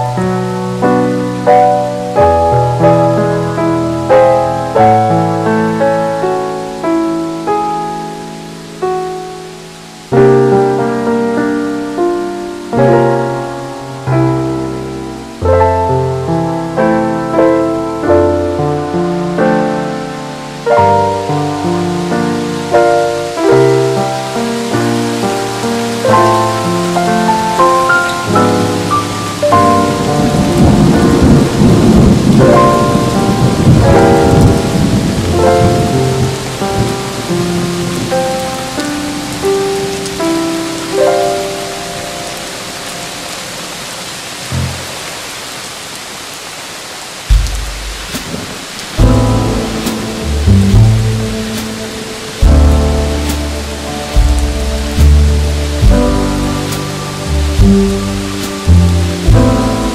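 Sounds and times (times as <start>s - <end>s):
steady rain: 0.0s - 59.9s
thunder rolling: 26.2s - 38.4s, 47.3s - 59.9s
slow soft jazz: 47.2s - 59.9s.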